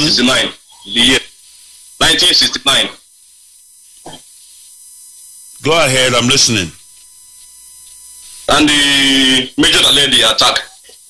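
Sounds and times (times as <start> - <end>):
phone line hiss: 0.0 - 11.0.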